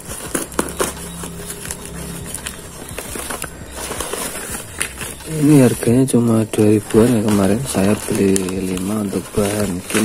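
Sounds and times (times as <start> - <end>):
paper rustling and crinkling: 0.0 - 10.0
steady low hum: 0.0 - 10.0.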